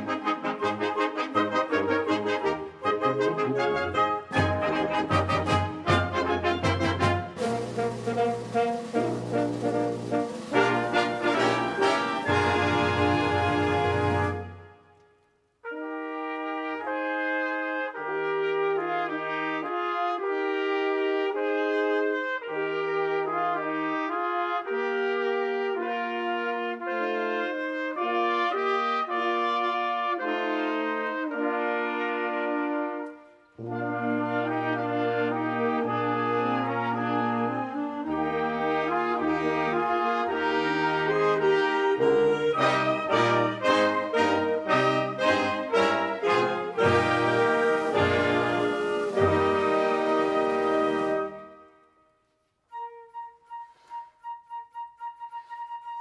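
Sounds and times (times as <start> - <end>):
sustained brass chords: 0.0 - 15.0, 15.6 - 53.4
wind band playing: 0.0 - 52.0, 52.7 - 56.0.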